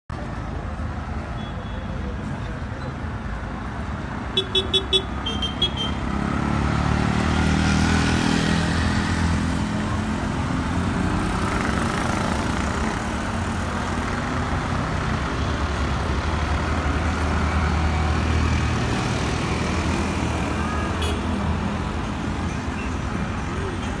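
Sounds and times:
road and traffic noise: 0.1 - 24.0.

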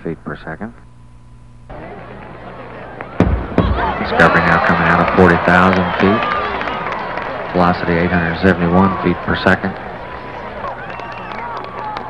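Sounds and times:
crowd chattering: 1.7 - 12.0
double sonic boom: 3.1 - 4.8.

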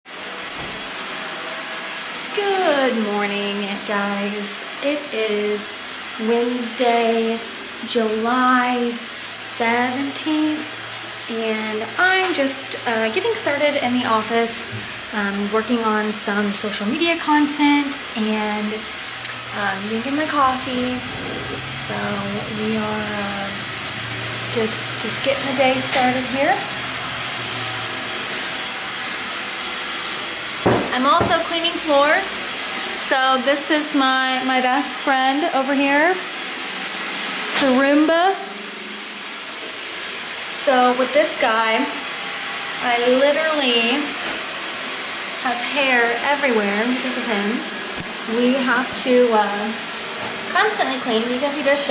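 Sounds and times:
vacuum cleaner running: 0.0 - 51.9.

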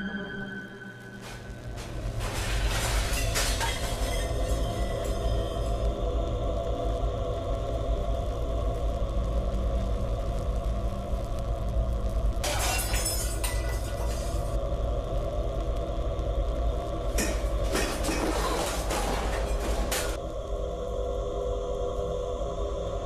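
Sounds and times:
low droning horror music: 0.0 - 23.0
crashing shattering bursts: 2.1 - 5.6, 12.4 - 14.5.

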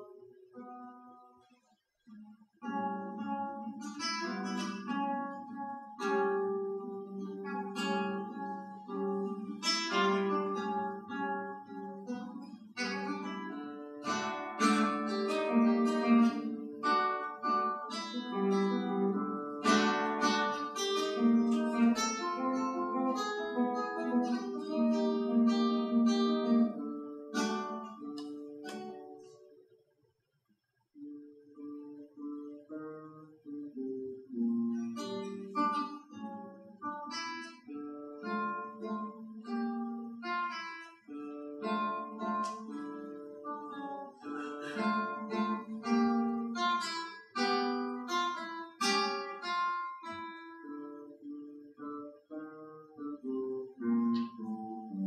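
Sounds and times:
solo classical guitar: 0.0 - 55.0.

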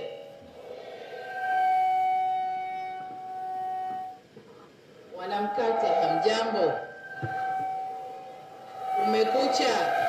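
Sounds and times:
high-pitched loudspeaker feedback: 5.0 - 10.0.

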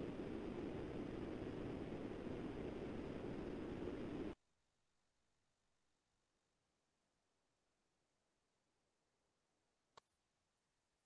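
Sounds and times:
low hiss of room noise: 0.0 - 5.9.

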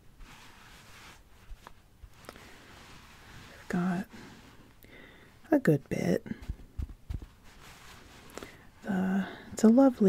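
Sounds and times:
yarn rustling: 0.0 - 9.5.

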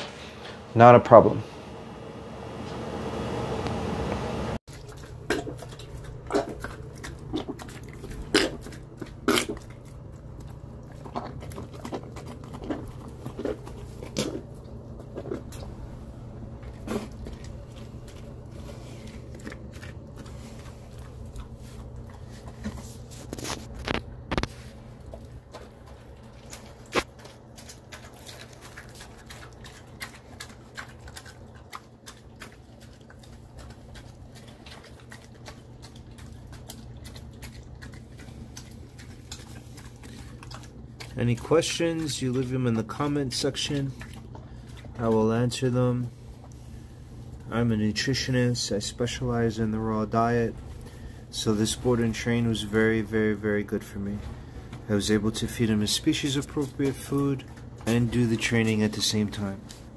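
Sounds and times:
dog chewing and crunching: 0.0 - 59.9
low steady hum: 0.0 - 59.9.

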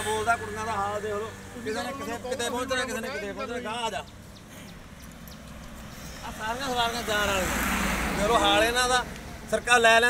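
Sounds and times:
road vehicle passing: 0.0 - 10.0.

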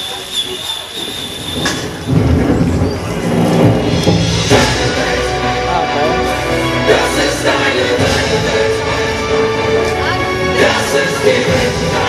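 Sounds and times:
low rumbling noise: 0.9 - 12.0.

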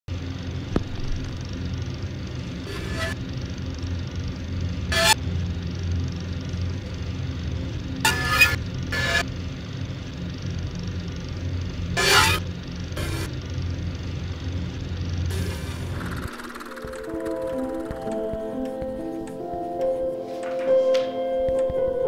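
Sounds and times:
steady low hum: 0.1 - 20.5.

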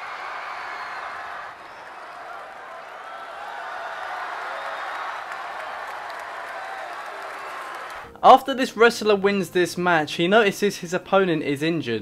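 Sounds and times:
crowd applauding: 0.0 - 8.1.

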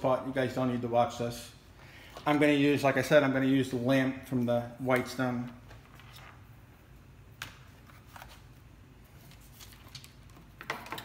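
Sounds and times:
paper and plastic rustling: 5.4 - 6.4, 7.7 - 10.6.

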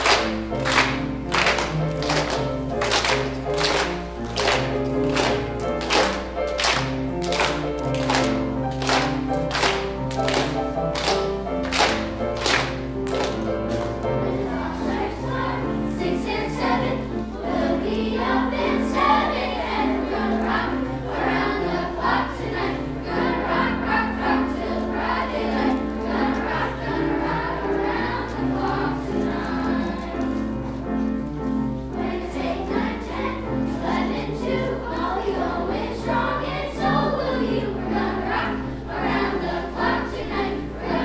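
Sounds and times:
children's choir singing: 0.0 - 41.0
piano accompaniment: 0.0 - 41.0.

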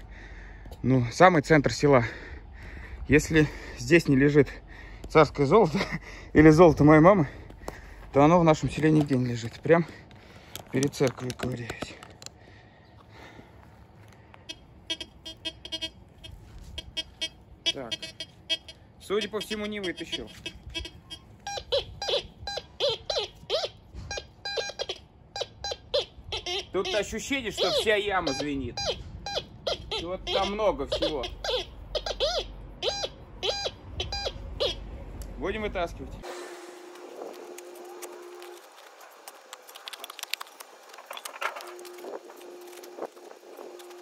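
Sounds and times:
metal detector beeps: 14.4 - 34.8, 41.6 - 44.0.

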